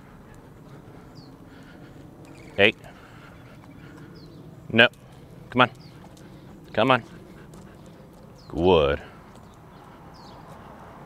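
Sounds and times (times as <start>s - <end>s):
footsteps on concrete: 5.9s - 8.5s
person speaking a command: 6.8s - 7.0s, 8.5s - 9.1s.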